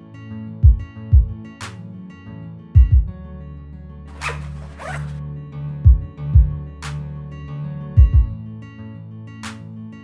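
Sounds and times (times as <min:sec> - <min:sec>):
music with deep bass beat: 0:00.6 - 0:01.9, 0:02.8 - 0:03.2, 0:05.8 - 0:07.1, 0:07.9 - 0:08.5
zipper rasping: 0:04.1 - 0:05.2.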